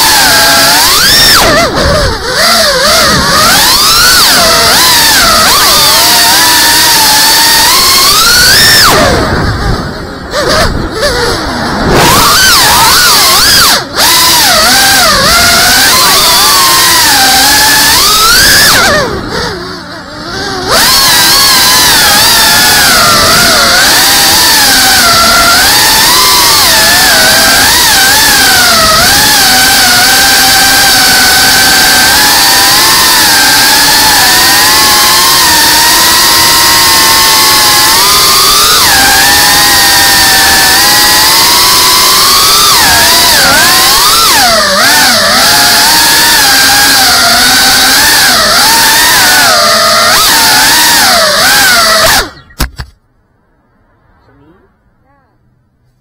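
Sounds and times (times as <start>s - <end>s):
drone motors and propellers whining: 0.0s - 53.0s.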